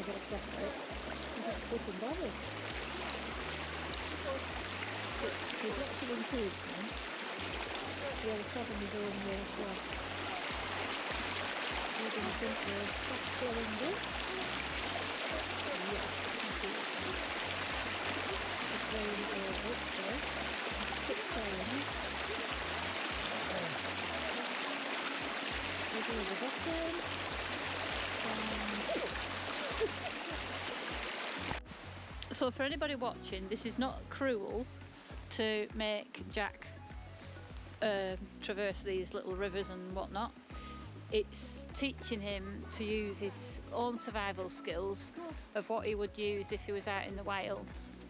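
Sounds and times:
stream rushing over rock: 0.0 - 32.4.

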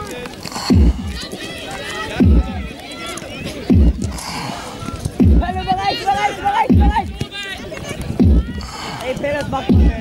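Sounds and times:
players calling out: 0.3 - 10.0
low booming drum beats: 0.6 - 1.2, 2.1 - 2.7, 3.6 - 7.3, 8.0 - 10.0.

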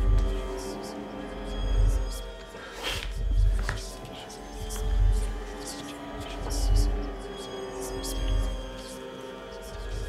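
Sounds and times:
low throb: 0.0 - 2.3, 3.0 - 8.9
sustained droning tones: 0.0 - 10.0.

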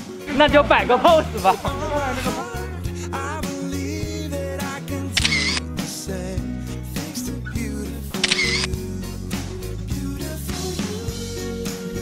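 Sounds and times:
background music: 0.0 - 12.0
camera shutter clicks: 5.2 - 5.7, 8.2 - 8.7.

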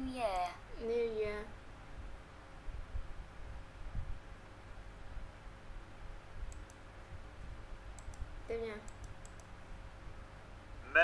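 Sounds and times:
computer mouse clicking: 6.5 - 6.8, 7.9 - 9.5.

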